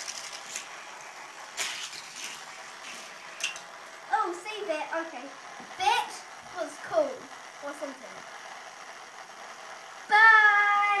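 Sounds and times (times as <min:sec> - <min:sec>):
child exclaiming: 0:04.1 - 0:05.1, 0:10.1 - 0:11.0.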